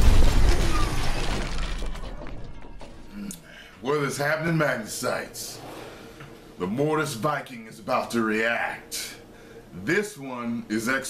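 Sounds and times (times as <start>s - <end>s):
glass shattering: 0.0s - 2.8s.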